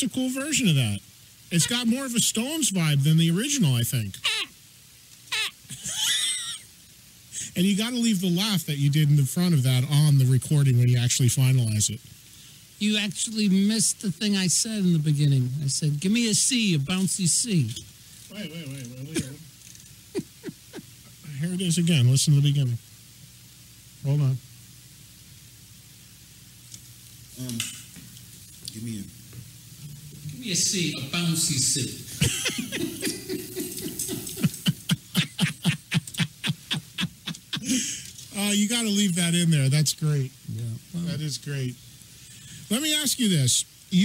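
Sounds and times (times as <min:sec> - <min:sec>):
low hum with faint hiss: 0:00.0 - 0:44.0
man squealing laughter: 0:04.2 - 0:04.5, 0:05.3 - 0:06.7, 0:20.2 - 0:20.9, 0:32.1 - 0:38.0.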